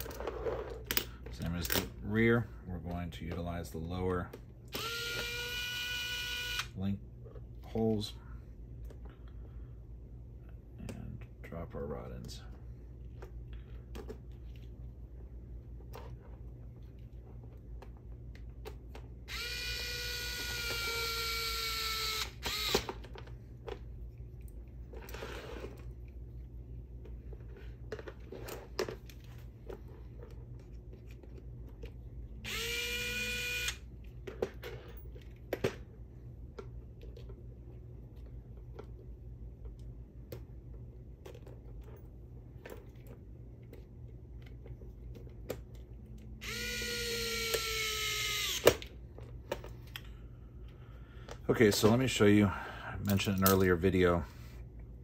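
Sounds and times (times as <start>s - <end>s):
electric screwdriver whining: 4.8s - 6.7s, 19.3s - 23.0s, 32.4s - 33.8s, 46.4s - 48.8s
clicks of small parts handled: 53.0s - 53.7s.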